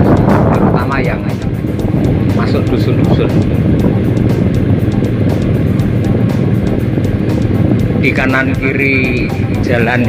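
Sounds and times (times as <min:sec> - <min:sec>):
motorcycle engine: 0:00.0 - 0:10.0
music playing: 0:00.0 - 0:10.0
wind rumble on microphone: 0:00.0 - 0:10.0.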